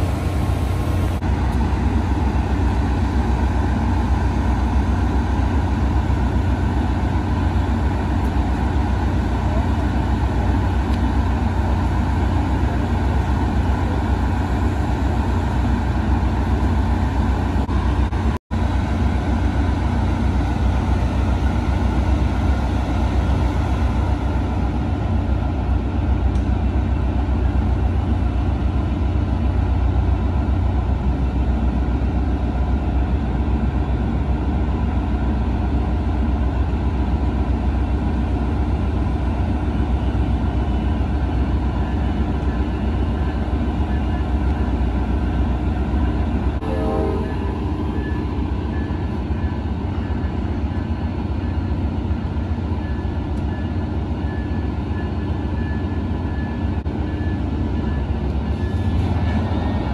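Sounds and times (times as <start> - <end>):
locomotive engine rumbling: 0.0 - 59.9.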